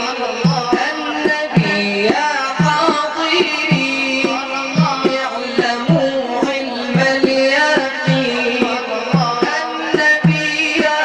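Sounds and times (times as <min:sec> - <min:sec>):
frame drum with jingles: 0:00.0 - 0:11.0
man singing: 0:00.0 - 0:11.0.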